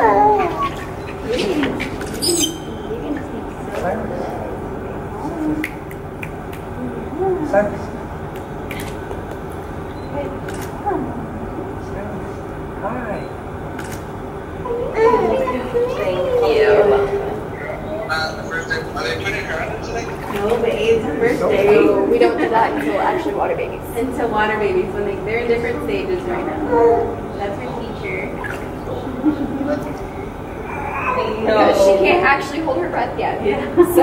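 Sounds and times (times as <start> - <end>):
background murmur: 0.0 - 34.0
indistinct voices: 14.6 - 34.0
baby crying: 14.7 - 18.3, 26.6 - 27.3, 30.6 - 31.9.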